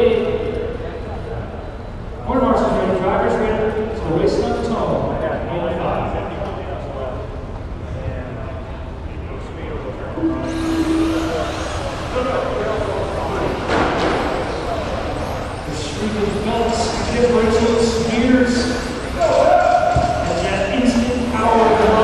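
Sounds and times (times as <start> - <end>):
voices in a hall: 0.0 - 22.0
start beep: 10.2 - 12.6.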